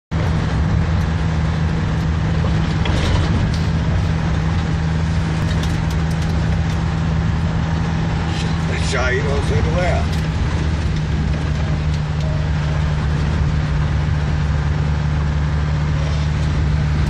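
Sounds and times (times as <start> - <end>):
car engine and road hum: 0.1 - 17.0.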